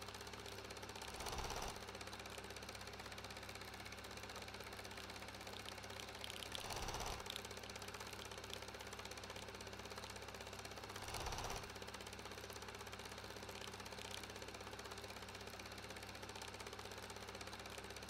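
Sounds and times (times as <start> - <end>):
film projector clattering: 0.0 - 18.0.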